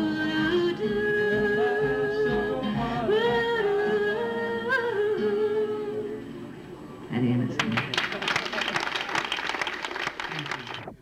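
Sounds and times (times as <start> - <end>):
acoustic guitar: 0.0 - 7.7.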